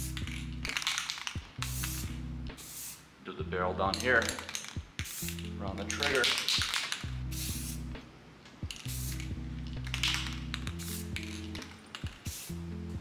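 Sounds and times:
spray paint can hissing: 0:00.0 - 0:03.1, 0:03.9 - 0:07.9, 0:08.7 - 0:13.0
background music: 0:00.0 - 0:13.0.

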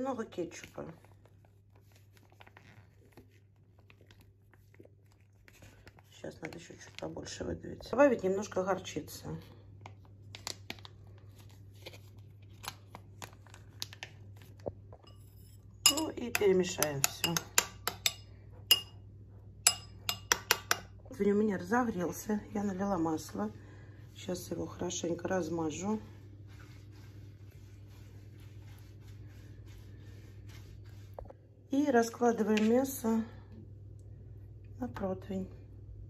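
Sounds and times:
plastic pouch crinkling: 0:10.2 - 0:14.6
pastry brush swishing on tray: 0:23.0 - 0:31.4.

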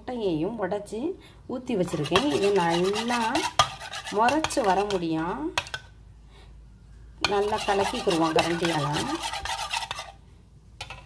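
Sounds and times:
metal spoon beating eggs in bowl: 0:01.8 - 0:05.8, 0:07.2 - 0:10.2.

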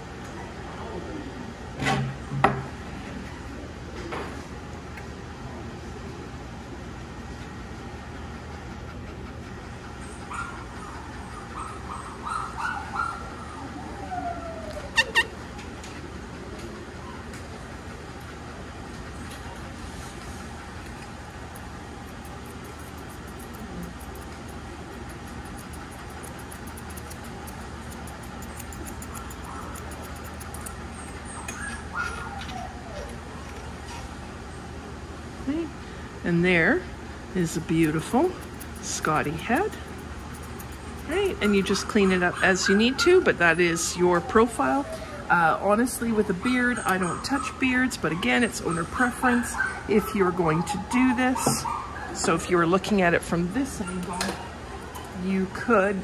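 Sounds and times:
background hum: 0:00.0 - 0:56.0
grooming shears snipping: 0:18.9 - 0:34.1, 0:37.4 - 0:43.2.

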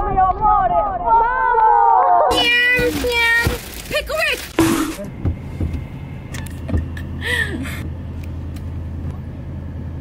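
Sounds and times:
car engine humming: 0:02.3 - 0:10.0.

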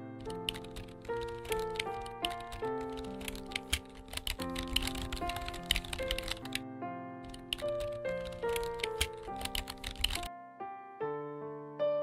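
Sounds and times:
background music of held notes: 0:00.0 - 0:12.0
keyboard typing clicks: 0:00.2 - 0:06.6, 0:07.3 - 0:10.3.

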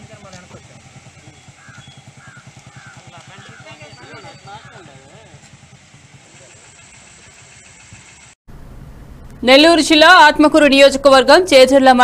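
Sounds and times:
motorcycle engine idling: 0:00.0 - 0:09.4.

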